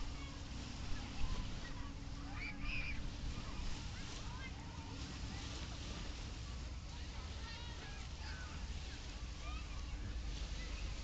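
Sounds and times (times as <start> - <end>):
faint distant voices: 0.0 - 11.0
gentle surf: 0.0 - 11.0
wind on the microphone: 0.0 - 11.0.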